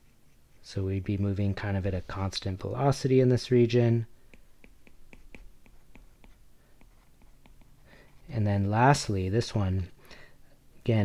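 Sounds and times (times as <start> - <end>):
stylus tapping and scratching on tablet: 4.2 - 8.4.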